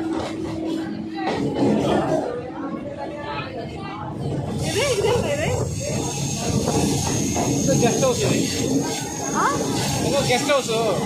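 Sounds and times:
electric train rushing: 0:04.1 - 0:11.0.

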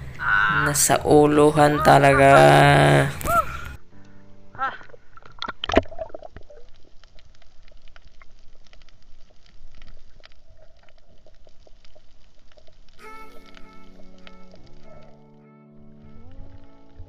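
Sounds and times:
low underwater hum: 0:04.9 - 0:17.0
crackle of faint clicks: 0:05.2 - 0:15.2.

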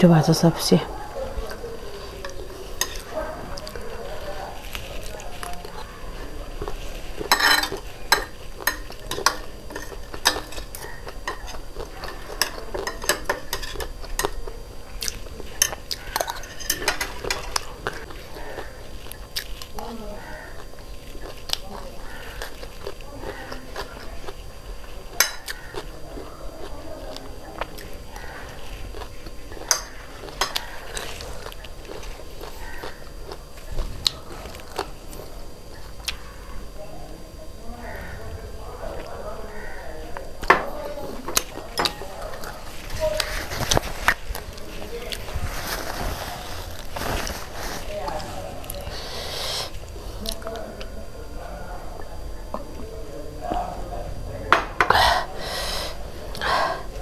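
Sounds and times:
crunchy snack eating: 0:01.3 - 0:36.5, 0:41.3 - 0:51.0
metal spoon clicking on plates: 0:07.3 - 0:14.4, 0:15.6 - 0:17.7, 0:29.6 - 0:30.6.

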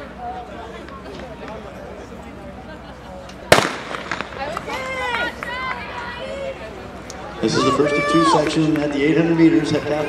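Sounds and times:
spectators shouting encouragement: 0:04.4 - 0:10.0.

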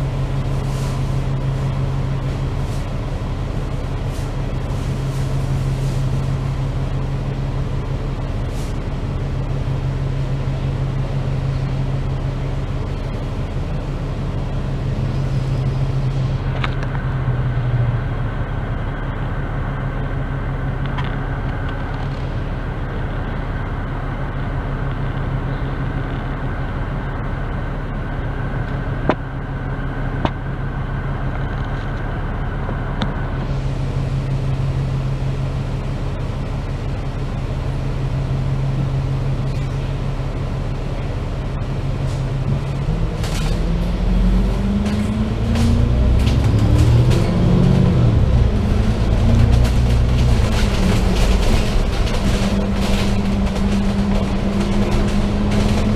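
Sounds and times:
bus engine idling: 0:00.0 - 0:55.9.

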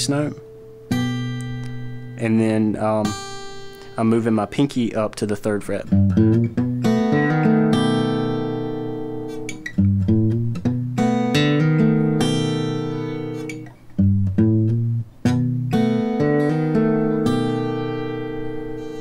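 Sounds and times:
fingerpicked acoustic guitar blues: 0:00.0 - 0:19.0.

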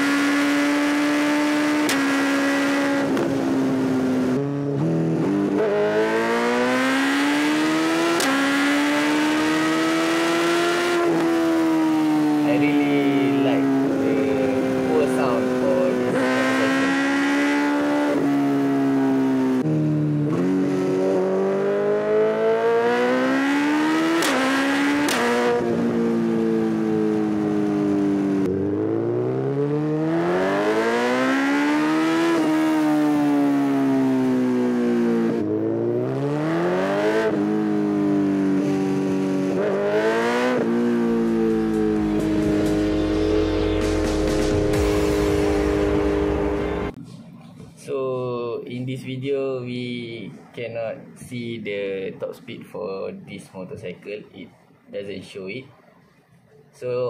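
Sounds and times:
motorcycle engine accelerating: 0:00.0 - 0:47.0.

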